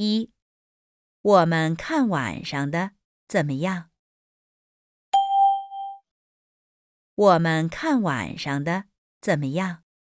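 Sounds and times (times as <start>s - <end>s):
bell-like chime: 5.2s - 6.0s.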